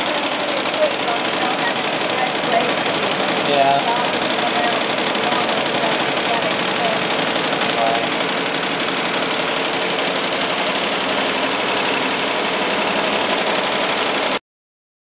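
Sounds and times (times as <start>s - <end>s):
embroidery machine clatter: 0.0s - 14.4s.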